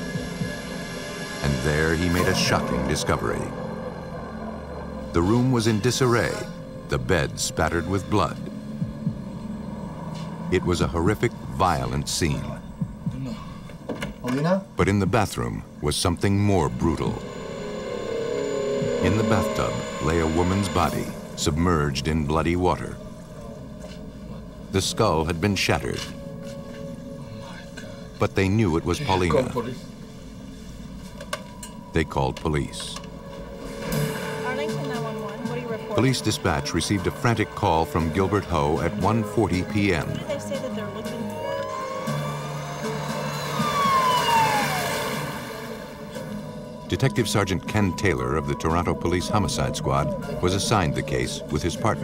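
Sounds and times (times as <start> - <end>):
droning hum of held tones: 14.8 - 52.0
police car siren wailing: 16.2 - 22.8, 39.8 - 46.2, 47.2 - 52.0.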